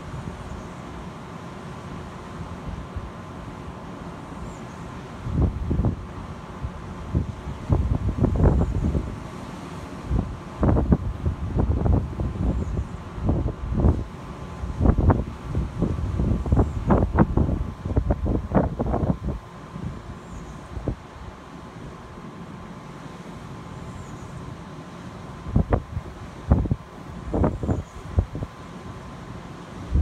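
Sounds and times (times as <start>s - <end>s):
wind buffeting microphone: 5.2s - 9.2s, 10.1s - 21.1s, 25.4s - 28.6s.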